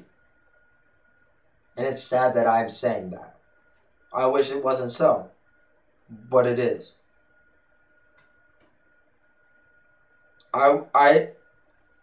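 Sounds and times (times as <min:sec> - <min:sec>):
faint steady high tone: 0:00.0 - 0:12.0
faint clicks: 0:08.1 - 0:08.8.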